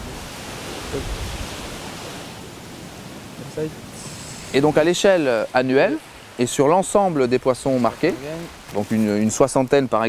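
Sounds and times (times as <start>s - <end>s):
gentle surf: 0.0s - 10.0s
wind: 0.0s - 10.0s.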